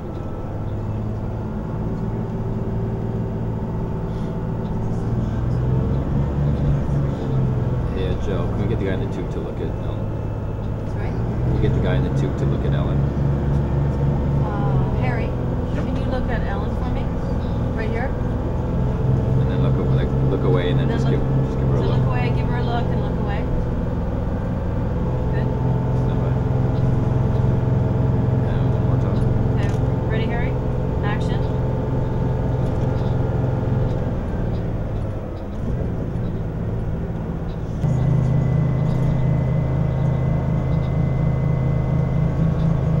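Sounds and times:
bus engine droning: 0.0 - 43.0.

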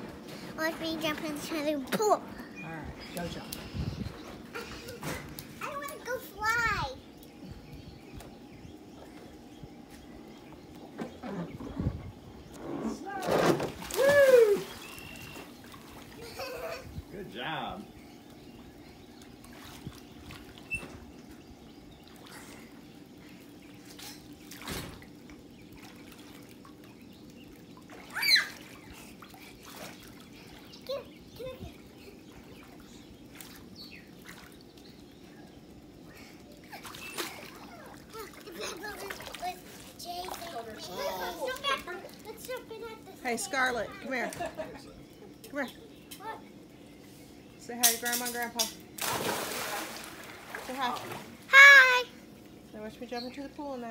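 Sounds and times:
pool water splashing: 4.2 - 7.4, 8.0 - 53.9.

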